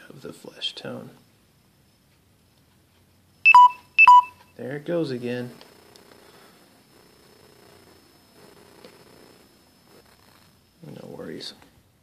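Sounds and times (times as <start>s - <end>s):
electronic alert beeps: 3.4s - 4.6s.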